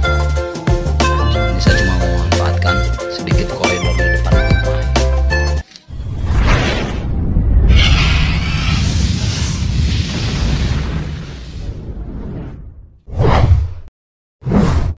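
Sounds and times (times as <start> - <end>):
deep rumble: 6.0 - 13.0.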